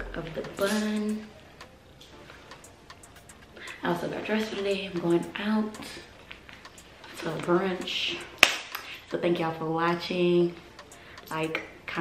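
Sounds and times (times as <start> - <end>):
woman's voice: 0.0 - 1.3, 3.8 - 6.1, 7.1 - 8.3, 9.1 - 10.6, 11.3 - 12.0
faint ticks: 5.2 - 7.5, 10.8 - 11.7.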